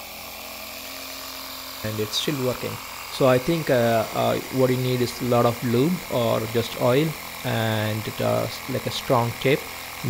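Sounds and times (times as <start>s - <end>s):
air compressor running: 0.0s - 10.0s.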